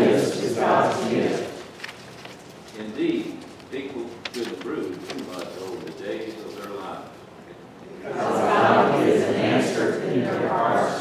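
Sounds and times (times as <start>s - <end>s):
congregation speaking in unison: 0.0s - 1.8s, 2.8s - 11.0s.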